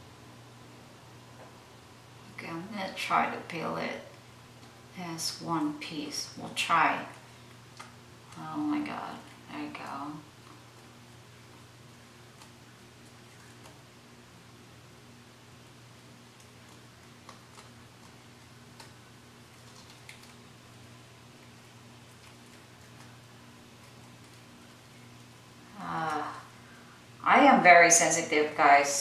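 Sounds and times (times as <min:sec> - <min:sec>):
steady low hum: 0:00.0 - 0:29.0
face mask peeling crackles: 0:16.3 - 0:25.4.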